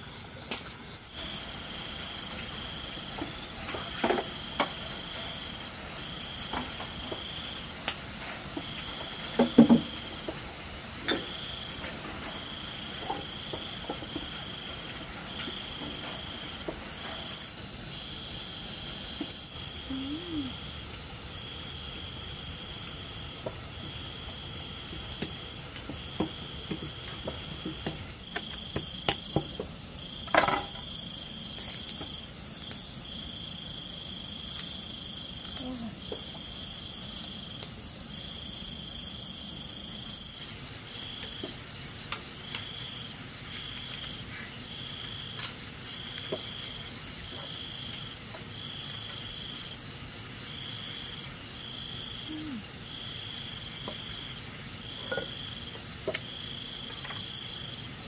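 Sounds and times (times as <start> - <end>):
crickets trilling: 0.0 - 58.0.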